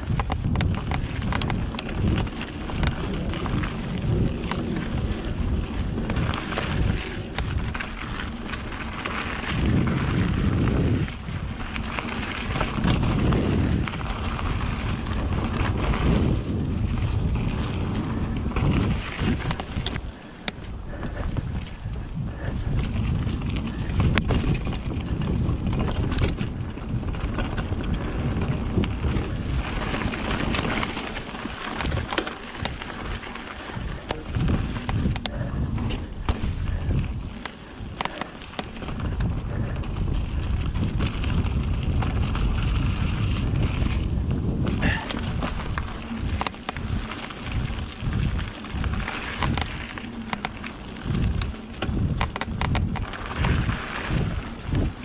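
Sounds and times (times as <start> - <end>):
bike chain and frame clattering: 0.0 - 55.0
bike tyres rolling on dirt: 0.0 - 55.0
wind buffeting microphone: 0.0 - 55.0.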